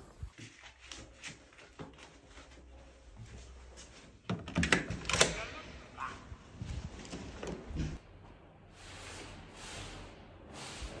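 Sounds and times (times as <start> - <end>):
door latch clicking: 4.5 - 5.4.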